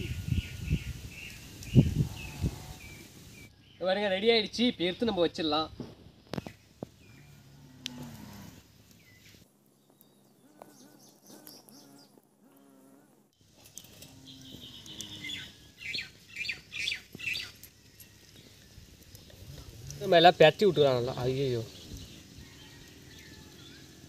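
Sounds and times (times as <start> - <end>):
birds chirping: 0.0 - 5.3, 6.2 - 24.0.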